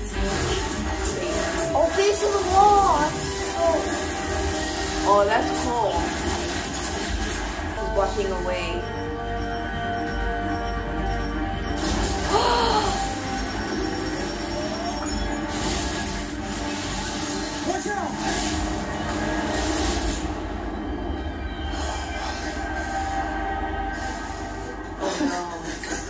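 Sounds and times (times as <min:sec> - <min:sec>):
dramatic score: 0:00.0 - 0:26.0.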